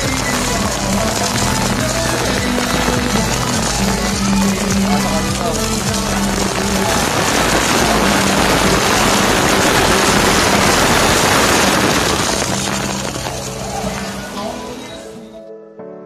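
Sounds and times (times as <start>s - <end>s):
water pouring and splashing: 0.0s - 15.1s
background music: 0.0s - 16.0s.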